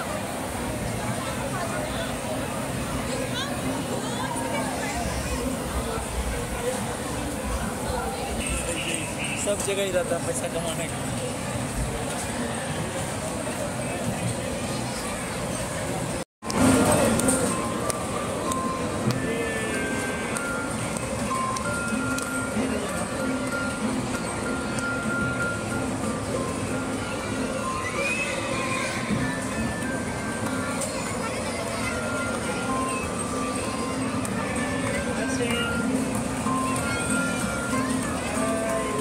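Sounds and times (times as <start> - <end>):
crowd chatter: 0.0 - 39.0
steady background noise: 0.0 - 39.0.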